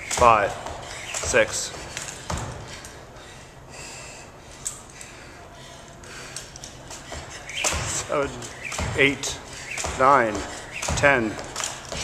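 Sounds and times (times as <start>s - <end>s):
jump rope slapping floor: 0.0s - 2.9s, 6.6s - 12.0s
low room hum: 0.0s - 12.0s.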